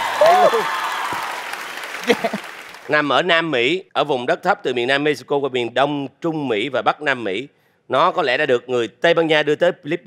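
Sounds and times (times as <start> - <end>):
audience applauding: 0.0 - 3.0.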